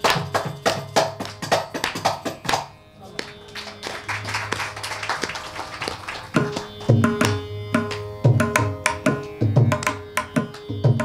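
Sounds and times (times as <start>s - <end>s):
steady drone: 0.0s - 11.0s.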